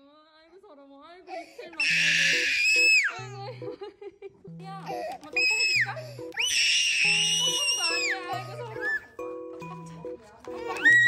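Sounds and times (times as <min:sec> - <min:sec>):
baby crying: 0:01.3 - 0:03.3, 0:04.9 - 0:09.2, 0:10.5 - 0:11.0.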